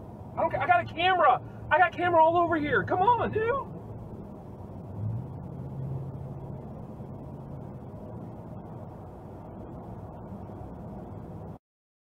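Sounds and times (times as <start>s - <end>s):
engine and tyre rumble: 0.0s - 11.6s.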